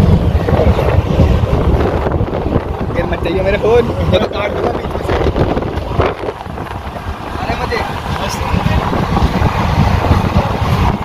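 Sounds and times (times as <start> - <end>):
train rumbling: 0.0 - 11.0
wind noise on microphone: 0.0 - 11.0.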